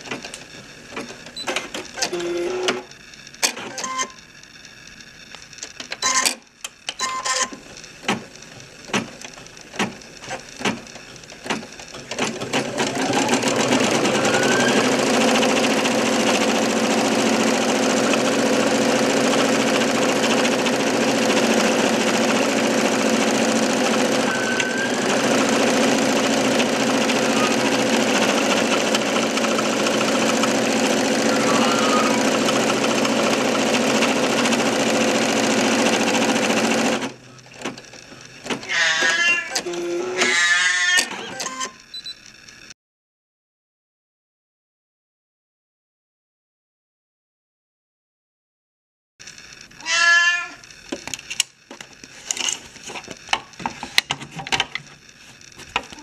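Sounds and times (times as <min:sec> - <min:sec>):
embroidery machine stitching: 0:00.0 - 0:04.2, 0:05.6 - 0:41.8
motor whine: 0:22.5 - 0:34.2
wavering high-pitched sounds: 0:31.2 - 0:32.4.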